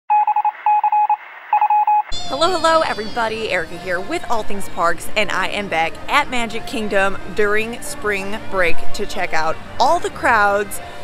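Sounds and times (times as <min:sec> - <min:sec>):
short electronic beeps: 0:00.1 - 0:02.1.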